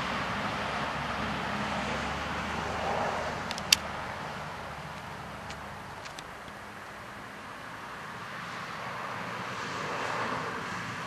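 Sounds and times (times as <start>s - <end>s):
passing vehicle rushing: 0.0s - 11.0s.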